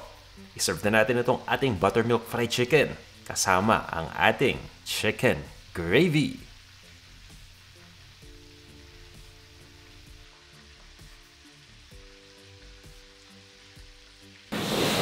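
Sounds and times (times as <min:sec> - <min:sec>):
soft background music: 0:00.0 - 0:14.8
chicken sizzling in oil: 0:00.0 - 0:15.0
loud room sound: 0:14.5 - 0:15.0.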